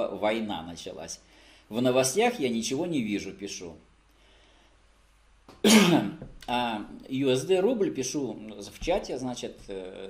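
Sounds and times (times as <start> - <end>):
man coughing: 5.6 - 6.2.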